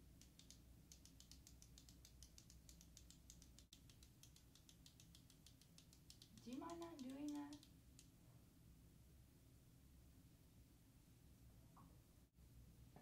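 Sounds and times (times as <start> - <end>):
pen clicking: 0.1 - 8.1
person speaking: 6.0 - 7.7.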